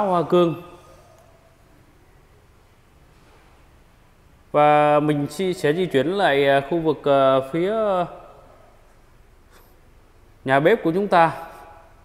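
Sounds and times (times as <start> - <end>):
man's voice echoing: 0.0 - 1.0, 4.5 - 8.7, 10.4 - 11.9.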